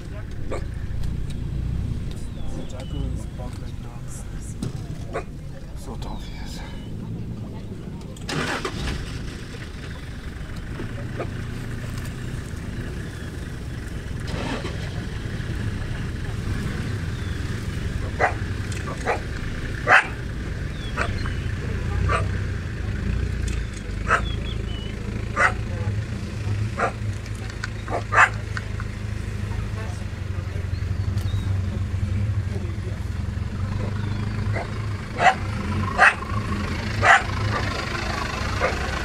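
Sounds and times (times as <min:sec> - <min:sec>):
vehicle engine idling: 0:00.0 - 0:39.0.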